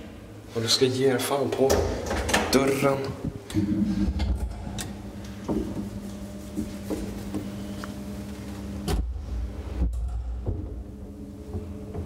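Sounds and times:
elevator machine hum: 0:03.3 - 0:12.0
elevator clunk and rumble: 0:08.8 - 0:12.0.

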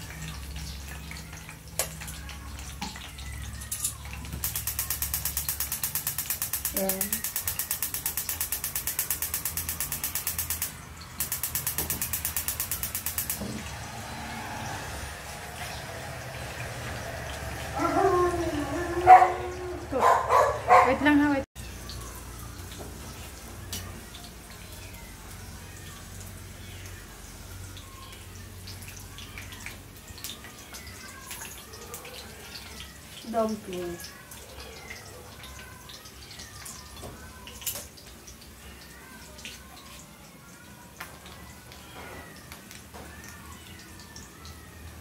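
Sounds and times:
gas hob igniter clicking: 0:04.4 - 0:13.7.

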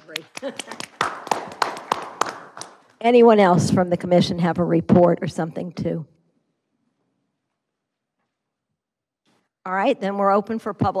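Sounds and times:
small group applauding: 0:00.0 - 0:02.9
loud claps: 0:00.0 - 0:03.0.

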